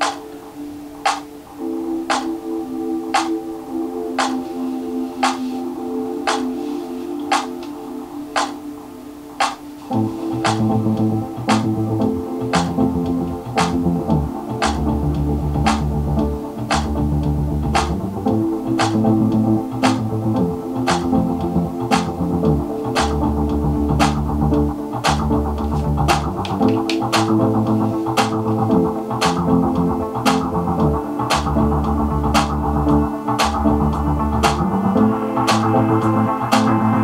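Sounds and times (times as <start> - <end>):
music with percussion and bass: 10.4 - 37.0.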